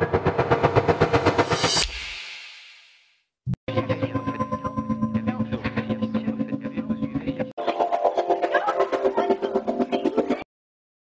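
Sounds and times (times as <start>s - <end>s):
rapid electronic stutter of beats: 0.0s - 3.0s
bright cymbal-like crash: 0.6s - 3.0s.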